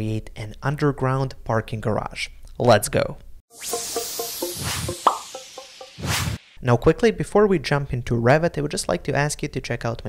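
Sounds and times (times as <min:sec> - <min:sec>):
short plucked notes: 0:03.5 - 0:06.4
upward blip: 0:03.5 - 0:06.5
whoosh: 0:03.5 - 0:06.6.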